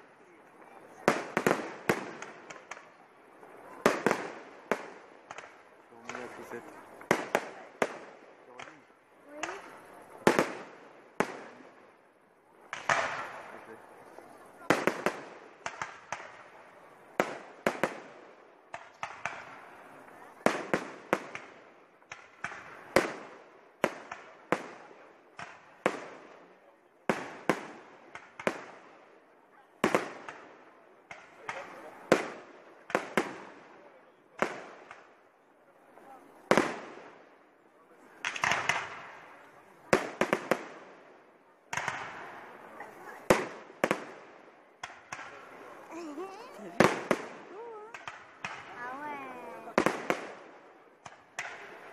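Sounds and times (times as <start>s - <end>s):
fireworks bursting with echo: 0.0s - 51.9s.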